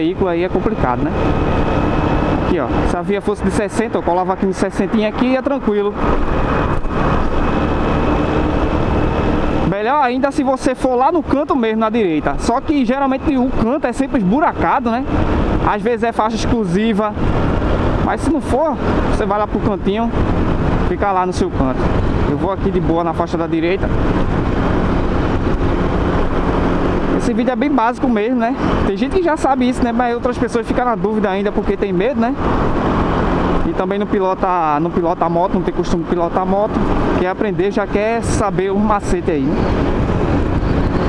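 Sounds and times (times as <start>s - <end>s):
wind rush: 0.0s - 33.8s, 36.5s - 41.0s
motorcycle engine running: 0.0s - 41.0s
road noise: 0.0s - 41.0s.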